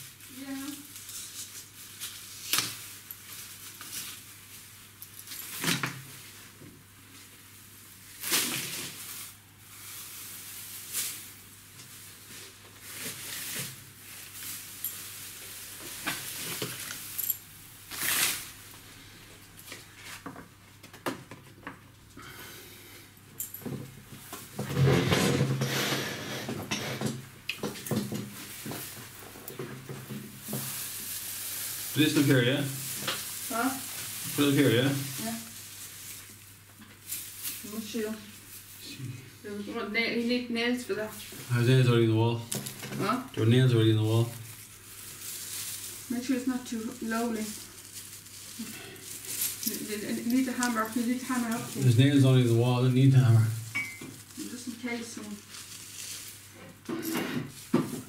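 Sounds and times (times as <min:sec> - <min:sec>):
foil tinsel rustling and crinkling: 0:00.0 - 0:20.3, 0:27.7 - 0:58.0.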